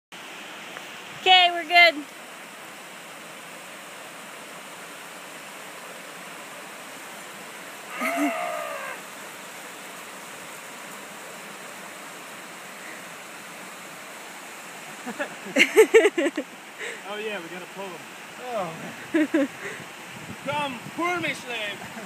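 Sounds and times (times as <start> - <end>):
mountain creek rushing: 0.1 - 22.0
person whooping: 7.9 - 9.0.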